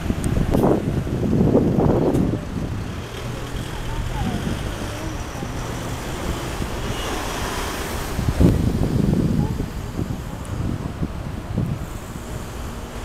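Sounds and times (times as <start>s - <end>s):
low traffic rumble: 0.0s - 13.0s
wind on microphone: 0.0s - 13.0s.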